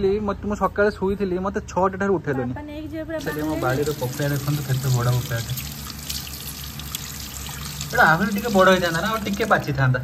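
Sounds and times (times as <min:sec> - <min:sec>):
person speaking: 0:03.2 - 0:05.7, 0:07.8 - 0:10.0
water splashing into sink: 0:03.2 - 0:09.8
water running from tap: 0:03.2 - 0:10.0.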